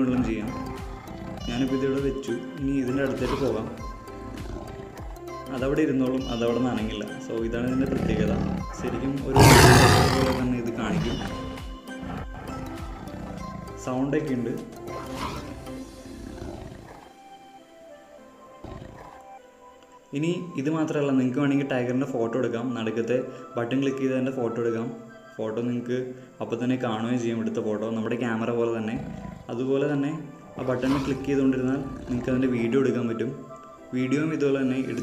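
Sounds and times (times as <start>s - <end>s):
tiger growl: 0.0s - 5.5s, 7.6s - 17.3s, 18.5s - 19.4s, 28.8s - 33.6s, 34.6s - 35.0s
tiger call: 7.8s - 13.8s.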